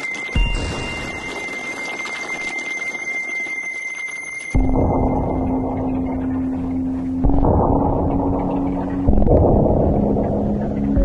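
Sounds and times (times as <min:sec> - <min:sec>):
high whistle-like tone: 0:00.0 - 0:04.8
dense flickering noise: 0:04.6 - 0:11.0.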